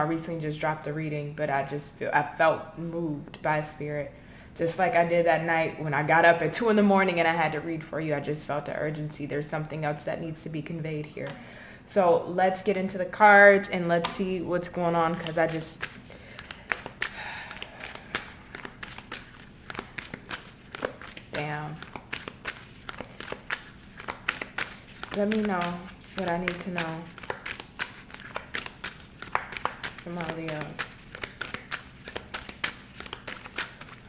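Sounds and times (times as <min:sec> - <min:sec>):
cards tapping and clicking: 0:15.2 - 0:34.0.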